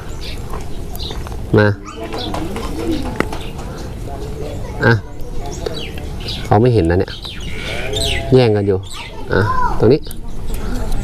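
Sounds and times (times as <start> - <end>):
bird cooing: 1.8 - 3.8, 7.4 - 8.5.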